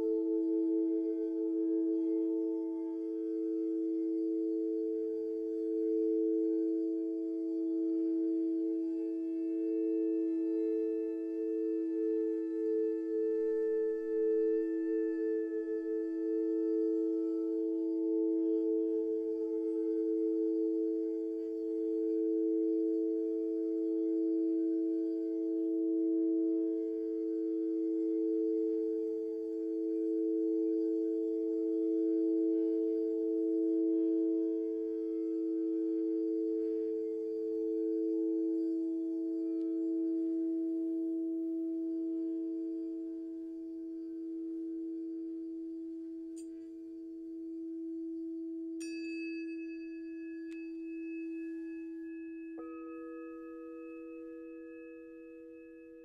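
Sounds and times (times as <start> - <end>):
crystal singing bowls ringing: 0.0 - 56.0
tuning fork ringing: 0.0 - 56.0.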